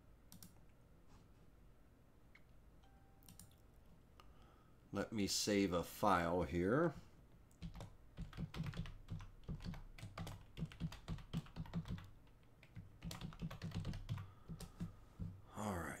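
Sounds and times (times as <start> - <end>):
typing on computer keyboard: 7.5 - 15.3.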